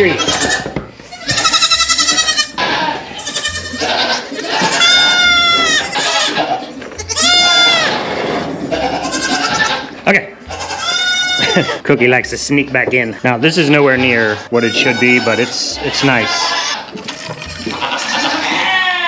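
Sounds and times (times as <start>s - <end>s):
goat kids bleating: 0.0s - 11.8s, 13.8s - 19.0s.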